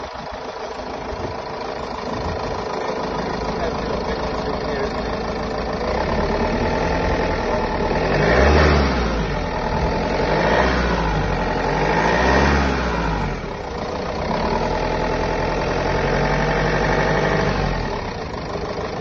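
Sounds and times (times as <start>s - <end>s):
van engine idling: 0.0s - 19.0s
van engine revving: 0.0s - 19.0s.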